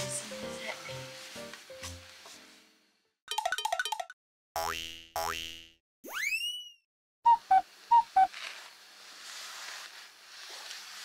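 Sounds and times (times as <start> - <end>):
cartoon boing swoops: 4.6 - 7.6
rising slide whistle: 7.3 - 8.3.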